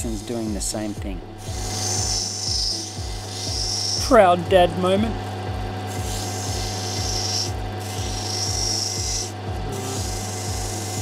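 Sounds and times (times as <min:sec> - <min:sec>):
grinder motor hum: 0:00.0 - 0:11.0
stone grinding hiss: 0:01.4 - 0:04.1, 0:05.9 - 0:11.0.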